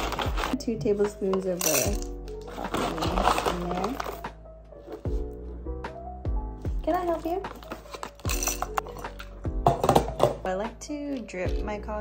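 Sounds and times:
background music with steady beat: 0:00.0 - 0:12.0
coffee beans rattling into metal bowl: 0:01.5 - 0:04.2, 0:07.9 - 0:09.2.

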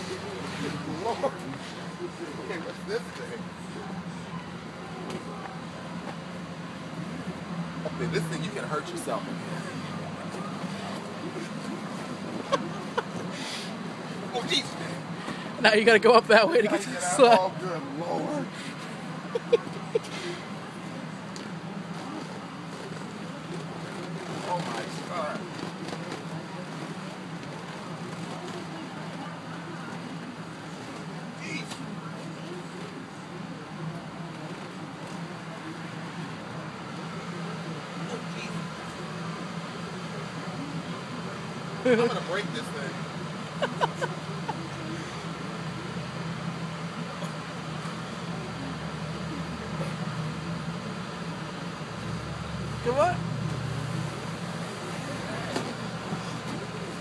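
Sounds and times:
blower fan humming: 0:00.0 - 0:57.0.

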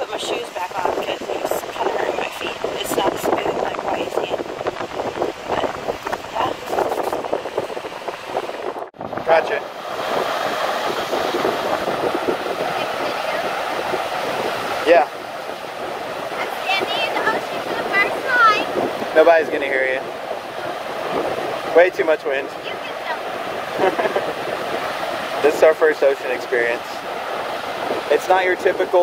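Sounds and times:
ocean surf: 0:00.0 - 0:29.0
wind gusting over microphone: 0:00.0 - 0:29.0.

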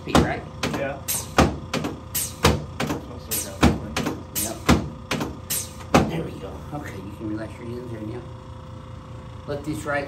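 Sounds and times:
sharp clacks of chiropractic table: 0:00.2 - 0:06.2.

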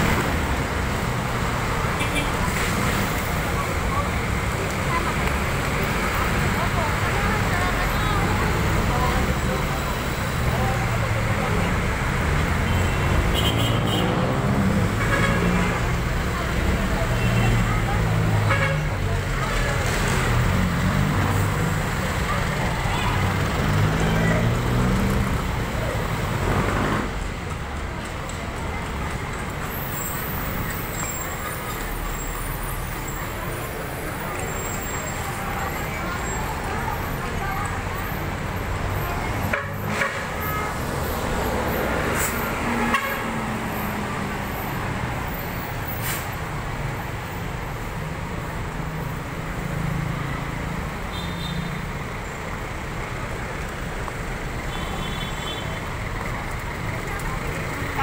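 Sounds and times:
road traffic: 0:00.0 - 0:58.0
people talking: 0:01.9 - 0:13.4, 0:15.4 - 0:26.6, 0:30.5 - 0:42.4, 0:54.4 - 0:58.0.

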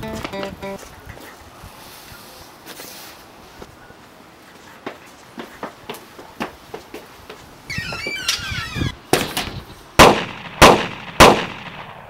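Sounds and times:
high chirping: 0:00.0 - 0:00.8, 0:07.7 - 0:09.0
gunshots with ringing tail: 0:10.0 - 0:12.0.

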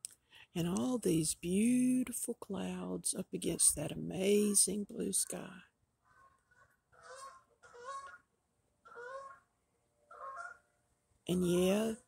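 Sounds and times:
geese honking: 0:04.4 - 0:09.5, 0:10.1 - 0:10.7.

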